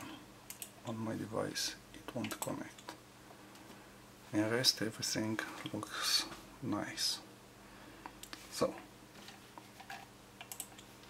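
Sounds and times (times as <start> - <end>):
computer mouse clicks: 0.0 - 0.8, 9.8 - 10.9.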